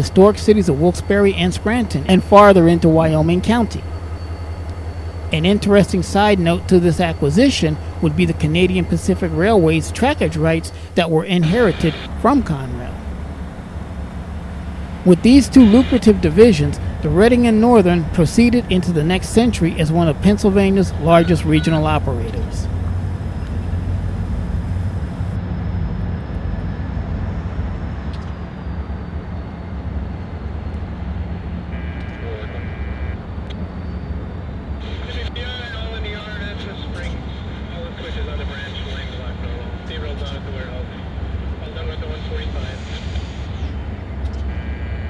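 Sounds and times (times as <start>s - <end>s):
diesel locomotive engine rumble: 0.0s - 45.0s.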